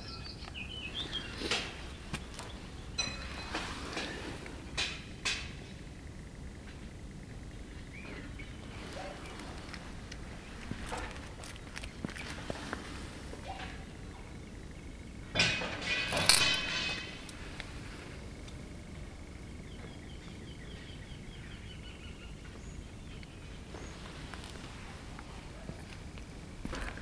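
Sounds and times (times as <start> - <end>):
footsteps: 0.9 - 4.6, 8.6 - 13.8, 23.7 - 27.0.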